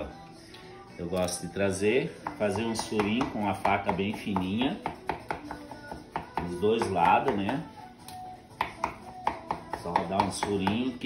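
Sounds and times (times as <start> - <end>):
knife tapping on cutting board: 2.2 - 7.6, 8.6 - 10.9.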